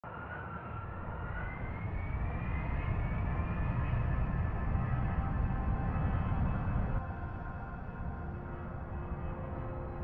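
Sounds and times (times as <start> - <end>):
faint whine rising in pitch: 0.1 - 10.0
jet engines roaring in cabin: 0.1 - 10.0.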